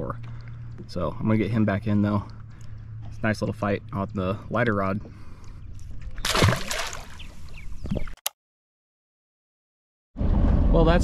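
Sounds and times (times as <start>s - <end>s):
water sloshing: 5.3s - 8.0s
fish splashing into water: 6.2s - 7.4s.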